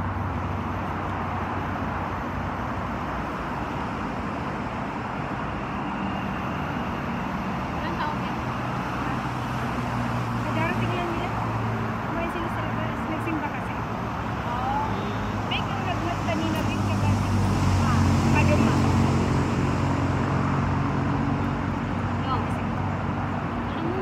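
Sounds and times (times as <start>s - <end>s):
city traffic rumble: 0.0s - 24.0s.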